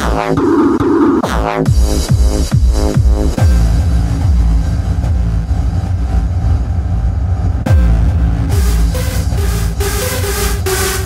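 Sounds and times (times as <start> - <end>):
electronic dance music: 0.0 - 6.9, 7.6 - 11.0
heavy kick drum pitch sweep: 0.0 - 11.0
pulsing bass line: 0.0 - 11.0.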